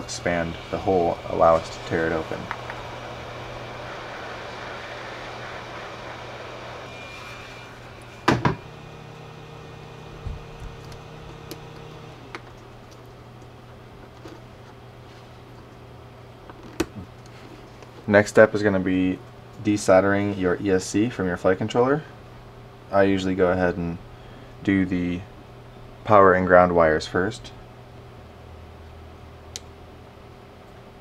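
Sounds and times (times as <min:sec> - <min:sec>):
heat gun blowing hot air: 0:00.0 - 0:12.4.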